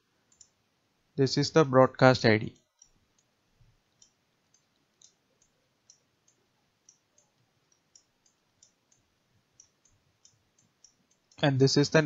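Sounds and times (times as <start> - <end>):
stylus clicking on pen tablet: 0.3 - 0.6, 2.6 - 11.4.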